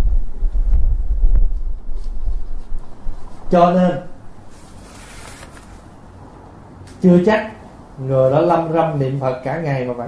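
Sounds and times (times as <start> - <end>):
wind-like rumble on microphone: 0.0 - 4.5.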